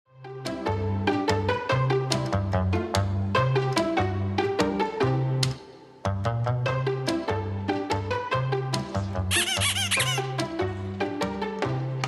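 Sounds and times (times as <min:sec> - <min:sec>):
playful plucked intro music: 0:06.1 - 0:12.0
rubber duck squeaks: 0:09.3 - 0:10.4.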